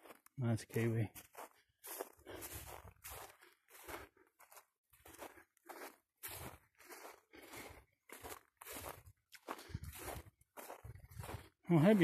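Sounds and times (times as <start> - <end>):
footsteps crunching on dirt: 0.0 - 12.0.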